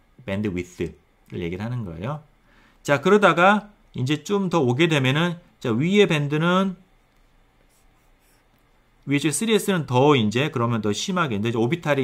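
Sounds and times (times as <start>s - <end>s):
stylus scratching on tablet screen: 7.0s - 8.8s.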